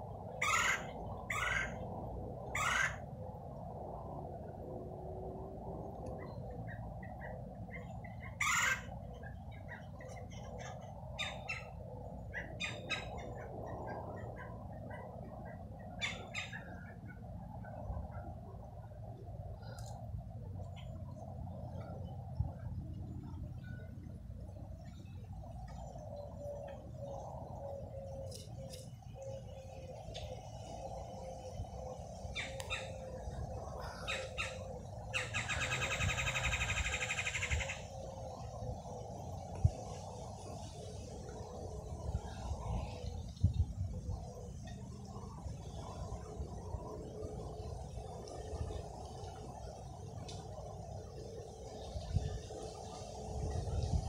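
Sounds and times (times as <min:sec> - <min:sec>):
low background rumble: 0:00.0 - 0:54.0
woodpeckers calling: 0:00.4 - 0:01.8, 0:02.5 - 0:03.0, 0:07.7 - 0:08.9, 0:09.5 - 0:13.5, 0:33.8 - 0:37.9.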